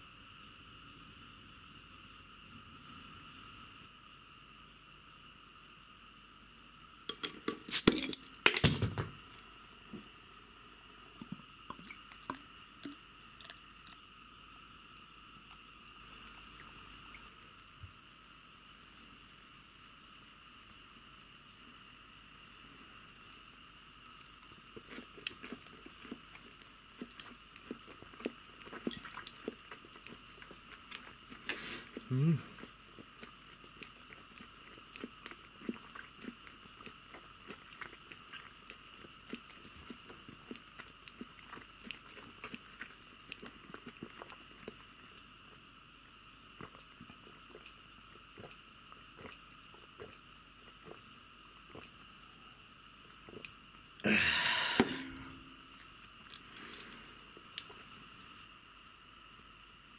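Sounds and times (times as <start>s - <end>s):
faint high-pitched hum: 0.0s - 59.9s
glass and dish clinks: 7.1s - 9.0s.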